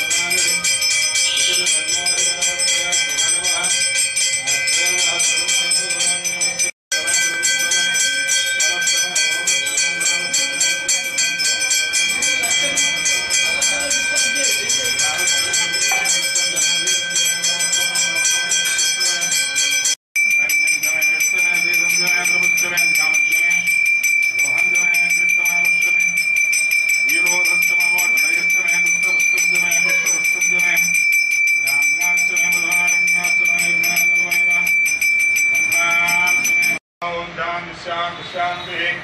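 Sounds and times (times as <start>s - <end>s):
man chanting: 0.0s - 26.2s, 27.0s - 31.0s, 31.6s - 34.8s, 35.5s - 39.0s
temple bell rung rapidly: 0.0s - 36.8s.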